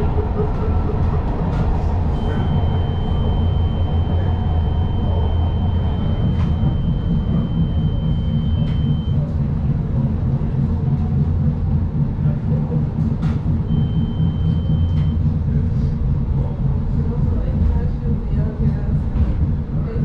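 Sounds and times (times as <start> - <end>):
train low rumble: 0.0 - 20.0
thin high steady tone: 2.2 - 9.2.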